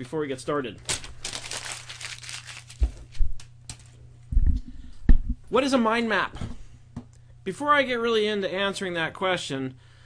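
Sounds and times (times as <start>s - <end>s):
paper rustling: 0.9s - 3.9s.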